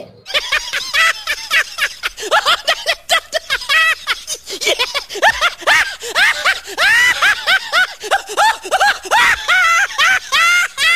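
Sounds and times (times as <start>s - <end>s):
high-pitched giggling laughter: 0.3s - 10.9s.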